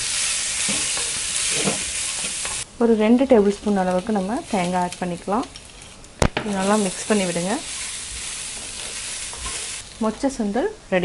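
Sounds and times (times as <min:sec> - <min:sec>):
woman speaking: 0:02.8 - 0:05.5, 0:10.0 - 0:11.0.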